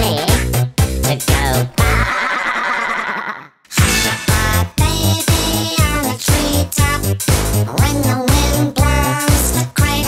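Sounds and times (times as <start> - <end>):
funk beat: 0.0 - 2.1, 3.8 - 10.0.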